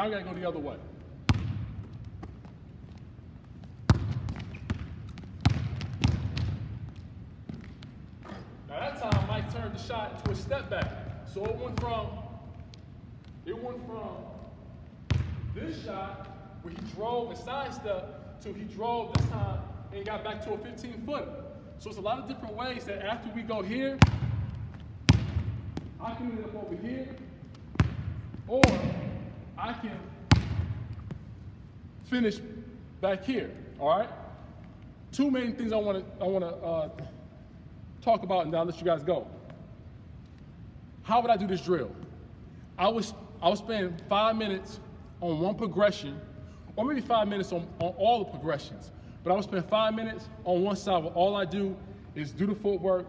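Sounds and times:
basketball bouncing on wooden floor: 1.3 - 2.6, 3.5 - 12.2, 15.0 - 15.6, 19.1 - 19.6, 24.0 - 26.0, 27.1 - 29.3, 30.3 - 31.2.

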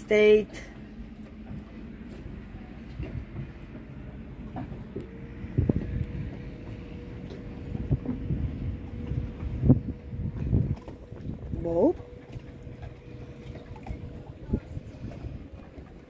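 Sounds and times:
low rumble: 0.0 - 16.0
steady hum: 0.0 - 16.0
footsteps on boat deck: 0.7 - 16.0.

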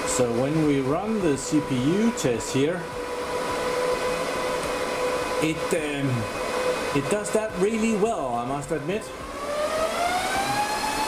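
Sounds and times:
server cooling fans whining: 0.0 - 11.0.

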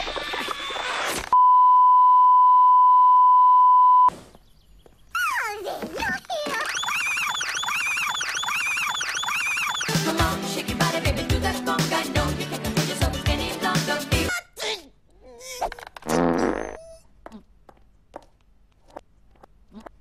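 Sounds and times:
loud electronic beep tone: 6.7 - 10.1.

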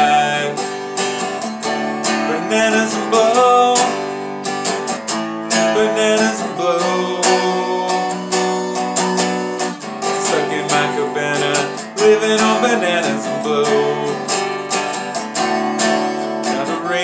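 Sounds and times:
guitar strumming chords: 0.0 - 17.0.

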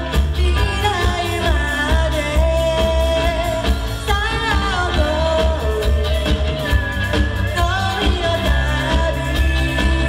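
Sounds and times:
live band playing pop song: 0.0 - 10.0
woman singing: 0.0 - 10.0.

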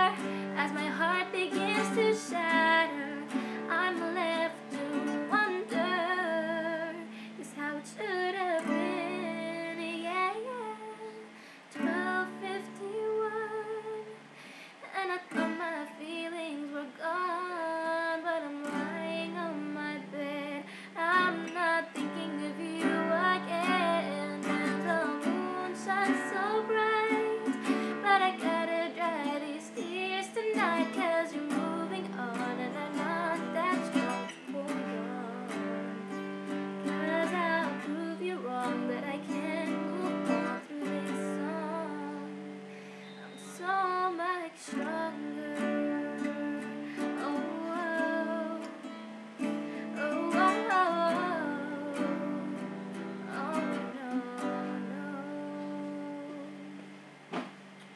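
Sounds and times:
strummed acoustic guitar: 0.0 - 10.9, 18.4 - 43.8, 44.8 - 56.5
woman singing: 0.0 - 56.9.

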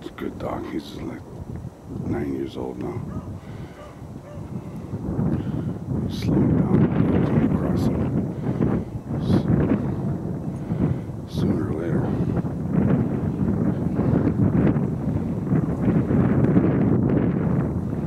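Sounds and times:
wind buffeting microphone: 0.0 - 18.0
dog baying: 3.0 - 4.5.

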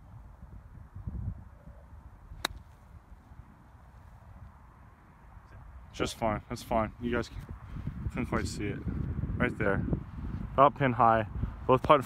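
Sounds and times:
golf club striking ball: 2.4 - 2.8.

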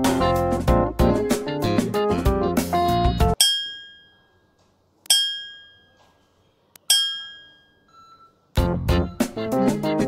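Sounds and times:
bell-like chime: 6.9 - 8.4.

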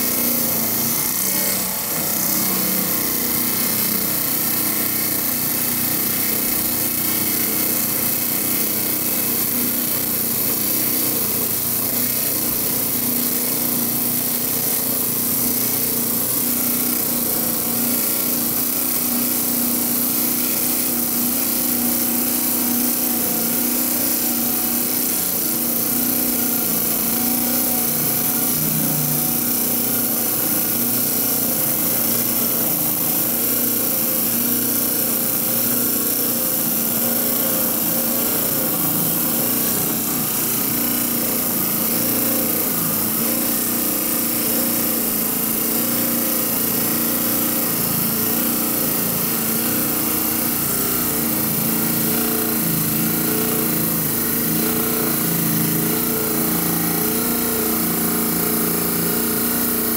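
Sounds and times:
motor hum: 0.0 - 59.9
saw blade grinding through stone: 0.0 - 59.9.

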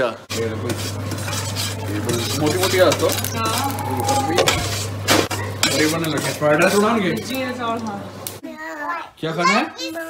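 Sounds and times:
steady low hum: 0.2 - 8.4
dishes and cutlery clattering: 4.3 - 7.4.

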